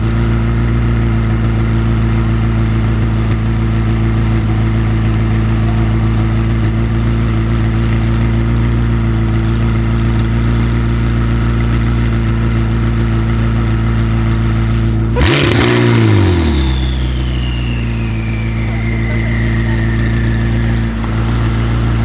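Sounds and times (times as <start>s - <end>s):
sports car engine idling: 0.0s - 22.0s
sharp engine rev: 15.1s - 22.0s.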